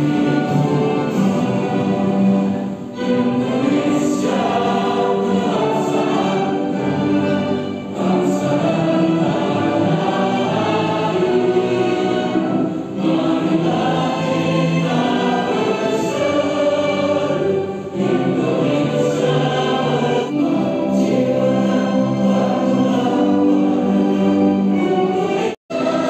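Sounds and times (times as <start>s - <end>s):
choir singing slow song: 0.0s - 26.0s
musical accompaniment: 0.0s - 26.0s.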